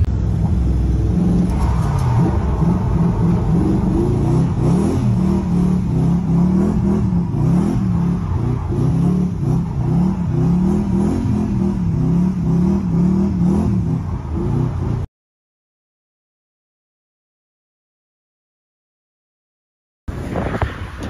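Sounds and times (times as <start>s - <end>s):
car engine revving: 0.0s - 15.1s.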